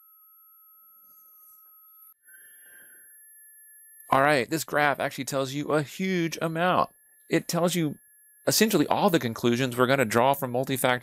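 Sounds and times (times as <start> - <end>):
thin high whine: 0.0 - 11.0.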